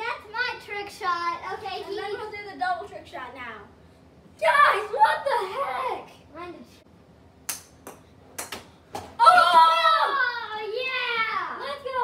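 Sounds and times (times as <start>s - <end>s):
child yelling excitedly: 4.4s - 6.1s, 9.2s - 12.0s.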